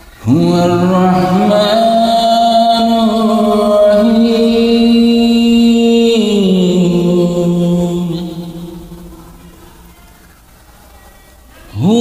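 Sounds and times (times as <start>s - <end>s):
voice chanting long note: 0.2s - 10.2s.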